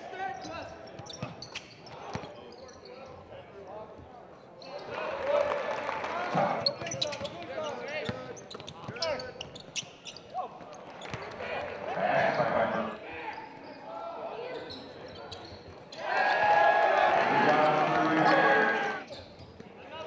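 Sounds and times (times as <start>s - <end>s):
sneaker squeaks: 0.3s - 3.2s, 6.6s - 11.4s, 13.2s - 16.0s, 18.3s - 19.7s
voices: 16.0s - 19.1s.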